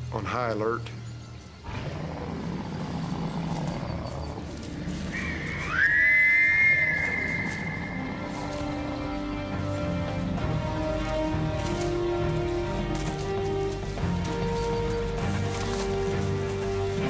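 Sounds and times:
bear whistle blowing: 5.1s - 9.2s.

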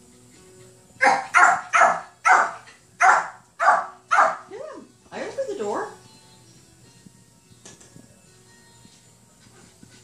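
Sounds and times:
puppy yapping: 1.0s - 4.5s.

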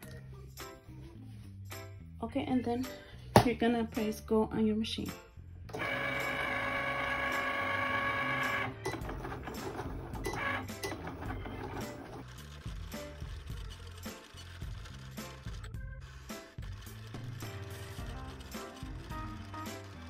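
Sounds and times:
background music: 0.0s - 20.0s
cutting machine motor whining: 5.7s - 12.6s
rollers and carriage whirring: 5.8s - 20.0s.

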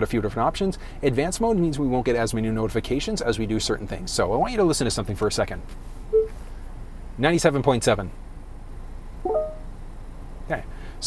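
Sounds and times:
short electronic chime: 9.3s - 9.6s.

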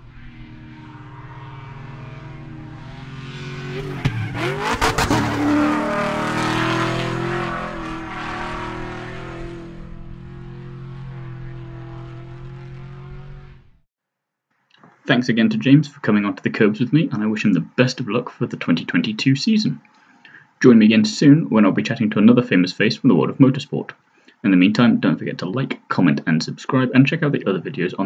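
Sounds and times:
race car engines: 0.0s - 13.8s.

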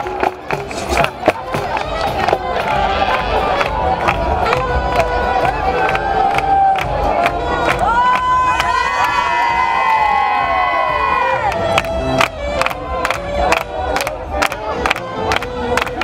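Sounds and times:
crowd noise: 0.0s - 16.0s
women cheering and screaming: 5.8s - 11.6s.

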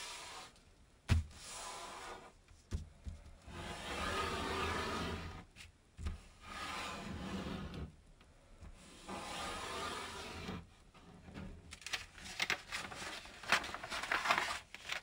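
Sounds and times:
paper rustling and sliding: 8.8s - 15.0s.

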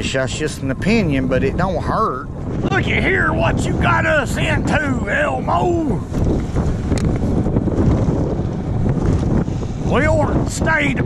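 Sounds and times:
choppy water: 0.0s - 11.0s
wind buffeting microphone: 0.0s - 11.0s.

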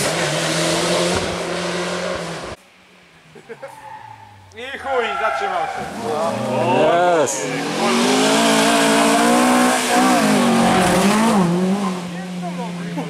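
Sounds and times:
rally car engine revving: 0.0s - 2.6s, 5.6s - 13.0s.

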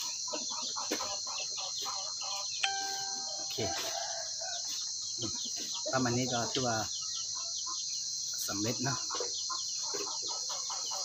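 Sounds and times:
chickens clucking: 0.0s - 11.0s
high-pitched insect buzz: 1.2s - 6.2s.

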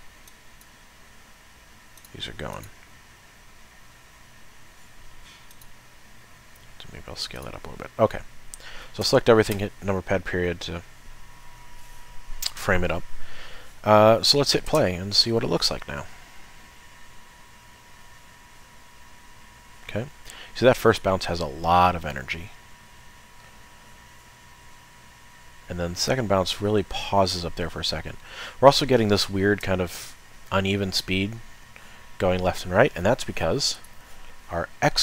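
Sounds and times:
low room hiss: 0.0s - 35.0s
computer mouse clicks: 2.0s - 2.7s, 5.4s - 5.7s.

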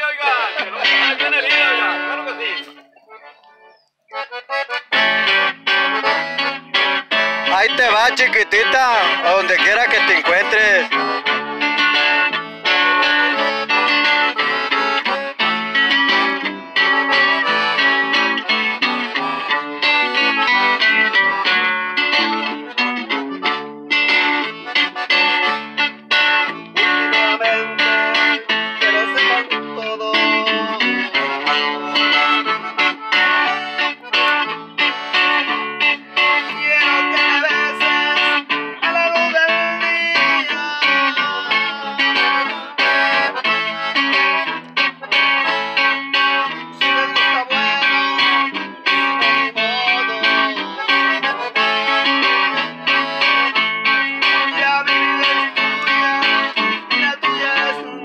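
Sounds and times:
acoustic guitar: 0.0s - 58.0s
amplified electric guitar: 0.0s - 58.0s
piano accordion: 0.4s - 58.0s.

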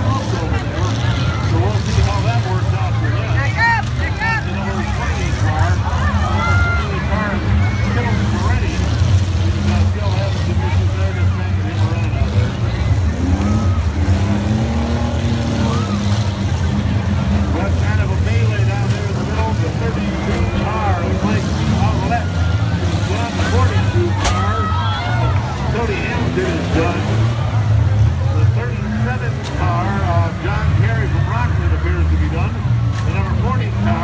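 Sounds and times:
car engines revving: 0.0s - 34.0s
crowd chatter: 0.0s - 34.0s.

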